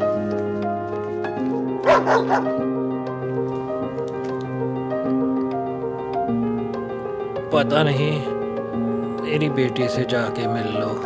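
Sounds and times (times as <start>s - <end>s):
soft music of sustained chords: 0.0s - 11.0s
dog barking: 1.8s - 2.6s.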